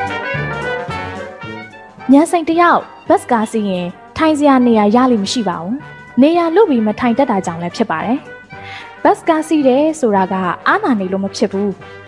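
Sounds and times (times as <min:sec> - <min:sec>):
faint background music: 0:00.0 - 0:12.0
storyteller narrating: 0:02.1 - 0:08.2, 0:09.1 - 0:11.8.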